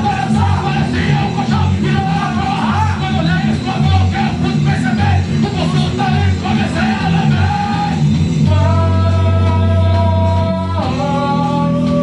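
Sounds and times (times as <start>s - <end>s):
bass guitar: 0.0s - 12.0s
distorted electric guitar: 0.0s - 12.0s.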